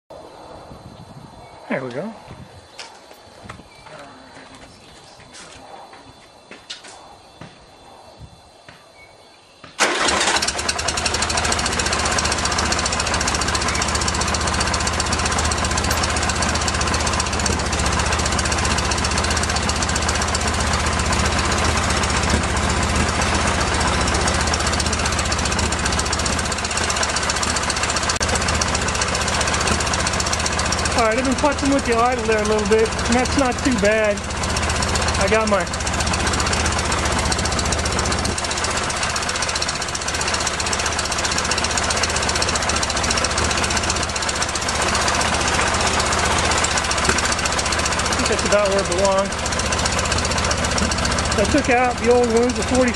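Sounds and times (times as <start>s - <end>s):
car engine starting and idling: 9.8s - 52.9s.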